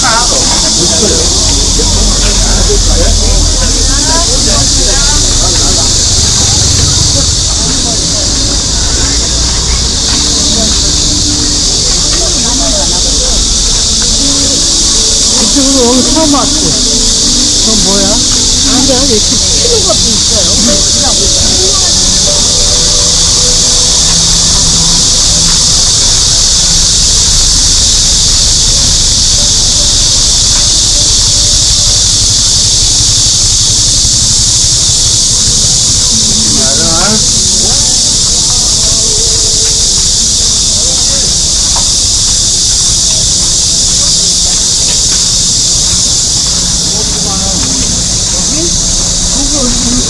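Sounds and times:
cicada chorus drone: 0.0 - 50.0
low street rumble: 0.0 - 50.0
passers-by talking: 0.0 - 50.0.

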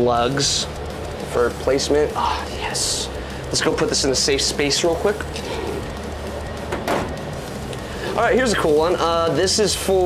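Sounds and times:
low steady hum: 0.0 - 10.0
metal clunk on dryer top: 6.7 - 7.2.

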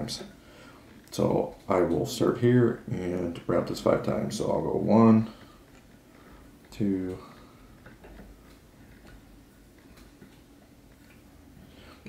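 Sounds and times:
faint irregular ticks: 0.0 - 12.0.

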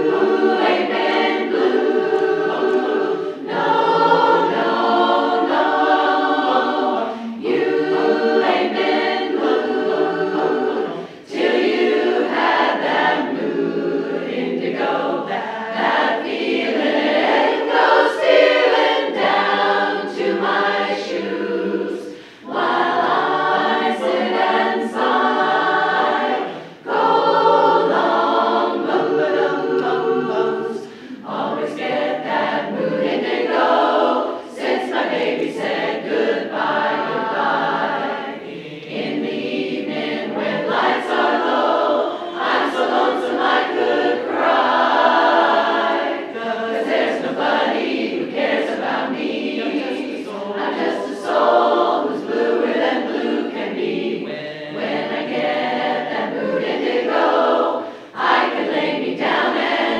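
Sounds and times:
women's chorus singing in harmony: 0.0 - 59.9.

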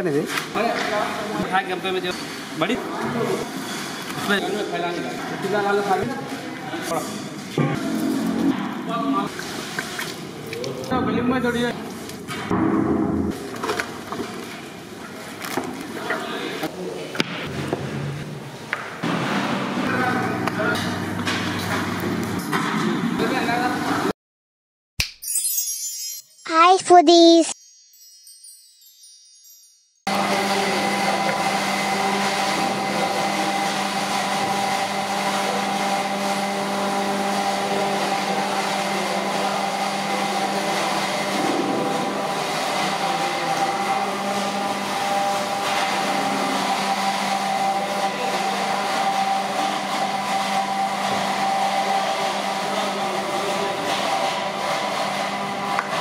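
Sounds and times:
machine hum: 7.6 - 9.3, 19.0 - 24.1.

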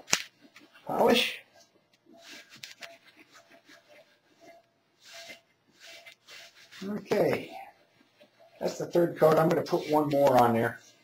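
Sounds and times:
rag rubbing on mold rim: 2.1 - 11.0.

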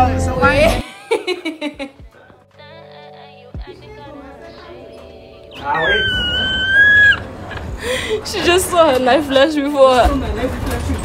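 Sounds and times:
woman screaming: 5.6 - 7.3.

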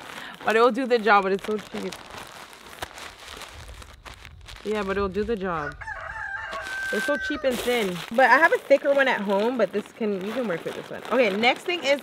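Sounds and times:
plastic shower cap crinkling: 0.0 - 12.0.

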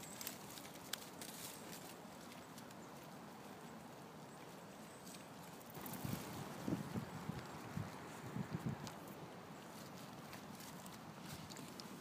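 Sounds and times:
footsteps rustling dry leaves: 0.0 - 12.0.

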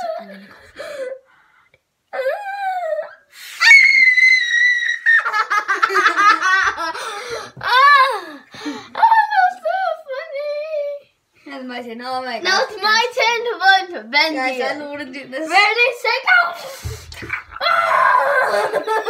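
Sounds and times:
child screaming: 3.0 - 5.3, 17.5 - 19.0
children laughing: 3.6 - 9.1, 17.4 - 19.0.

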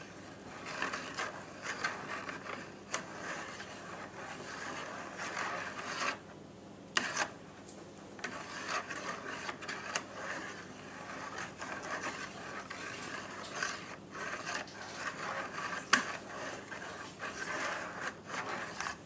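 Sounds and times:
wire whisk scraping a bowl: 0.0 - 6.2, 7.0 - 7.4, 8.2 - 19.0.

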